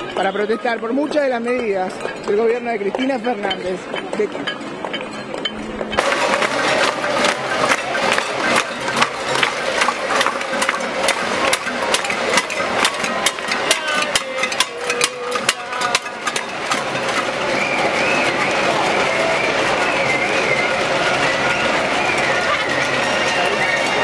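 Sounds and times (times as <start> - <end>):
crowd voices: 0.0 - 24.0
pots and pans banging: 1.6 - 20.0.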